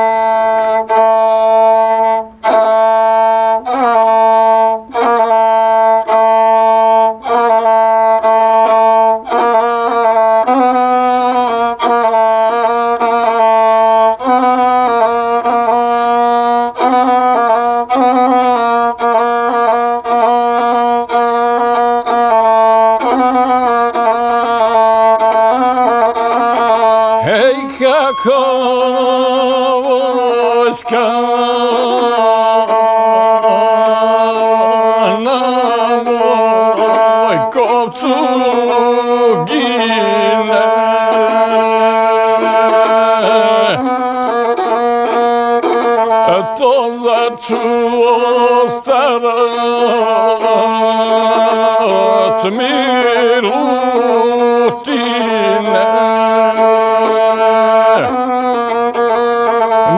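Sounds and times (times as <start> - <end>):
bowed single-string fiddle melody: 0.0 - 59.9.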